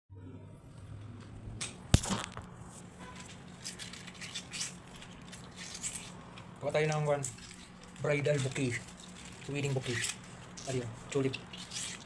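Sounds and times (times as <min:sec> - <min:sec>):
soft handling rustles: 0:02.6 - 0:12.0.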